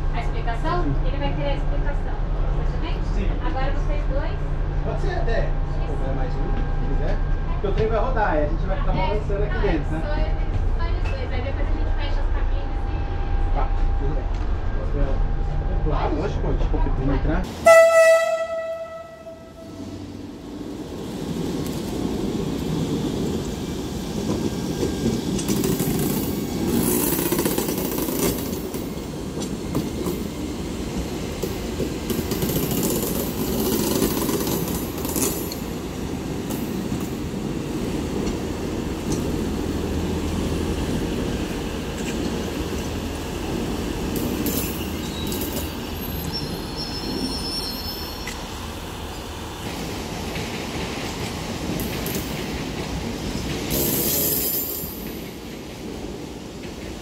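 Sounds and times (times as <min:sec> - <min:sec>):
train wheels rumbling on rails: 0:00.0 - 0:57.0
high squeal of train wheels: 0:44.4 - 0:49.2, 0:53.7 - 0:55.5.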